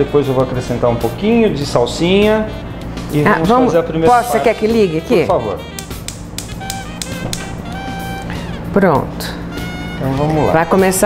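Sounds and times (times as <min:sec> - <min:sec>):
background music: 0:00.0 - 0:11.0
spark igniter clicking: 0:05.7 - 0:07.6.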